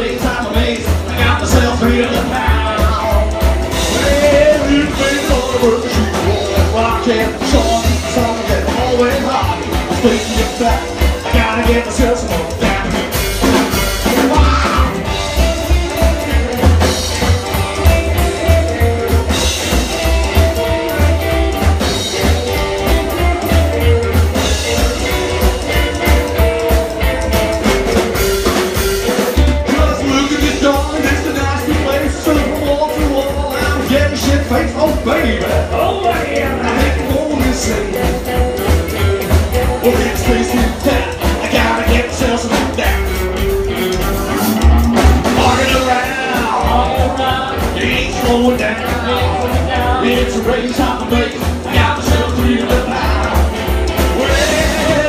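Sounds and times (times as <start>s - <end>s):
drum kit with cymbals: 0.0s - 55.0s
electric guitar lead line: 0.0s - 55.0s
upright bass plucked: 0.0s - 55.0s.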